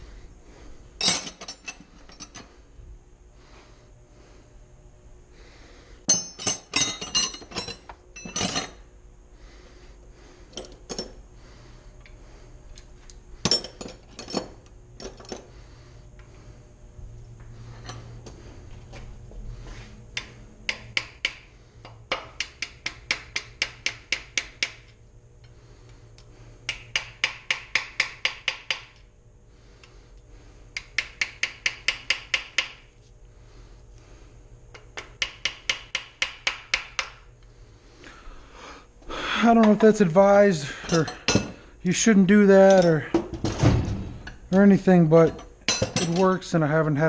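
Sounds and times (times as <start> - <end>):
tools clanking: 1.0 - 2.5, 6.1 - 8.8, 13.4 - 15.5, 40.7 - 41.6.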